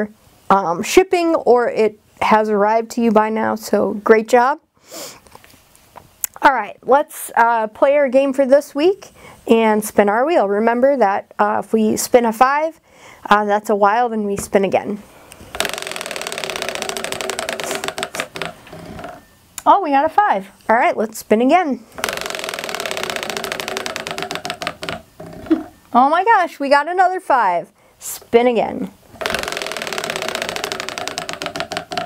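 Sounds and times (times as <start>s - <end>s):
prize wheel ticking: 15.6s - 18.6s, 22.0s - 25.0s, 29.2s - 32.0s.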